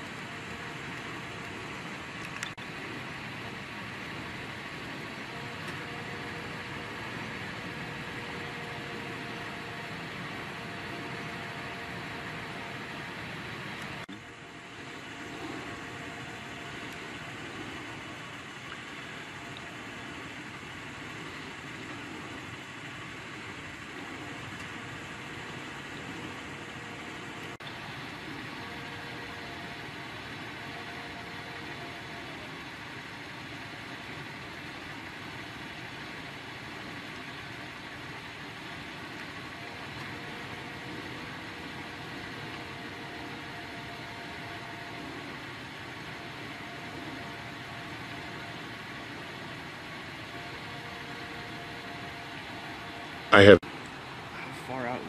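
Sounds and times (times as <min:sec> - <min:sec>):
low engine-like hum and hiss: 0:00.0 - 0:55.0
faint tones: 0:39.1 - 0:53.6.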